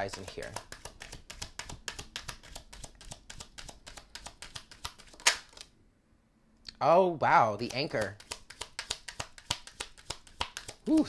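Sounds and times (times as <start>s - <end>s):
cards being shuffled: 0.0s - 5.7s, 7.6s - 11.0s.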